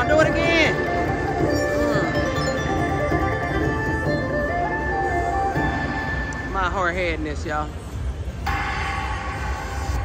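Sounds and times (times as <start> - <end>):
slot machine game music: 0.0 - 6.6.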